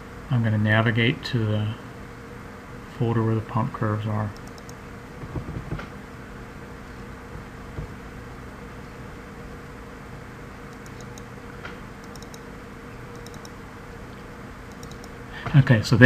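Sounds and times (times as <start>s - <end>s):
low hum and hiss of computer: 0.0s - 16.0s
computer mouse clicks: 4.4s - 4.8s, 10.7s - 11.3s, 12.0s - 12.5s, 13.1s - 13.6s, 14.7s - 15.2s.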